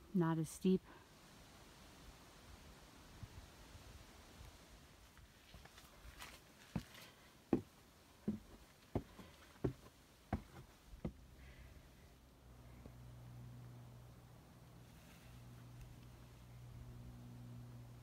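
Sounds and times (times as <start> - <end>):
faint foot scuffs: 5.2 - 10.7
footsteps on wooden stairs: 5.6 - 11.2.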